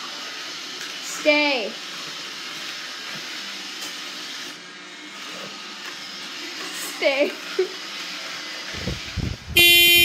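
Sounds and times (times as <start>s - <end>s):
robot vacuum cleaner whirring: 0.0s - 9.7s.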